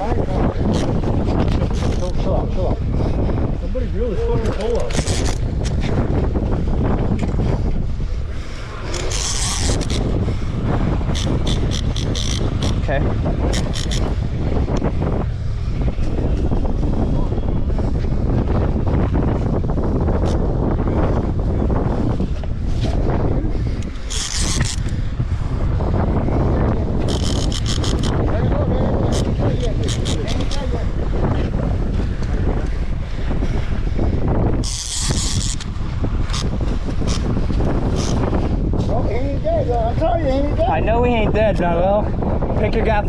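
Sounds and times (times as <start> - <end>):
wind buffeting microphone: 0.0 - 43.0
rapid high-pitched clicking: 27.1 - 28.2.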